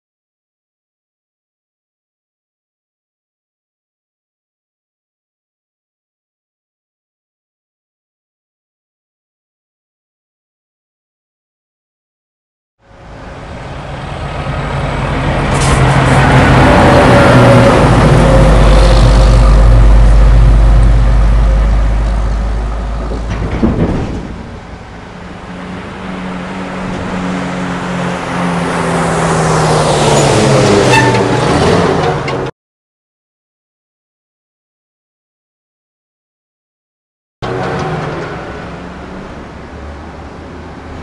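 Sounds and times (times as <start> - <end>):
heavy vehicle engine running: 12.8 - 32.5, 37.4 - 41.0.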